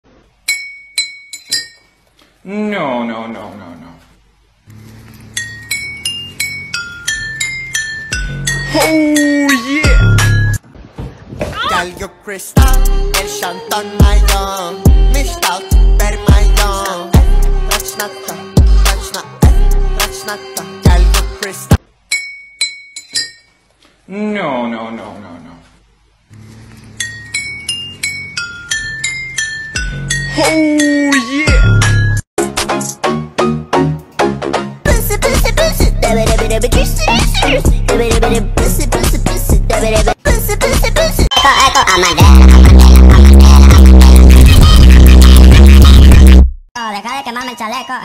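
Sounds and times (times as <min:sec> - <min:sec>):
glass clinking: 0:00.4 - 0:02.0, 0:05.3 - 0:10.6, 0:22.1 - 0:23.7, 0:27.0 - 0:30.5
bright glassy clinks: 0:00.5 - 0:02.0, 0:22.1 - 0:23.6.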